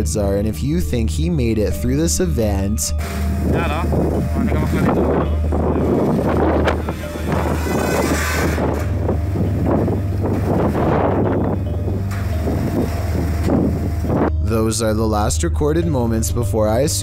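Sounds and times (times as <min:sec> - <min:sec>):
low droning music: 0:00.0 - 0:17.0
wind buffeting microphone: 0:03.0 - 0:14.4.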